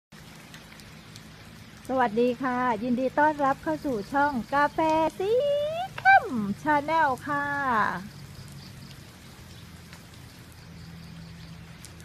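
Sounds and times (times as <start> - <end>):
steady rain hiss: 0.1 - 12.0
drops ticking: 0.2 - 12.0.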